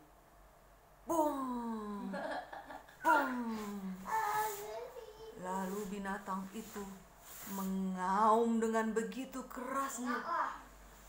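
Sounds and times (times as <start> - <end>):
woman speaking: 1.1 - 2.3, 3.0 - 4.2, 5.4 - 10.3.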